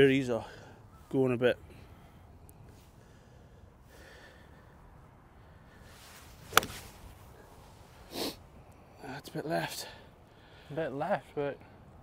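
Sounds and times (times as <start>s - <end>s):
golf club striking ball: 6.5s - 7.0s.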